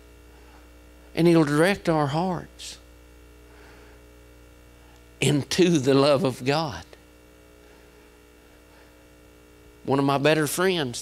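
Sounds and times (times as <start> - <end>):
electrical mains hum: 0.0 - 11.0
man speaking into microphone: 1.1 - 2.8, 5.2 - 7.0, 9.8 - 11.0.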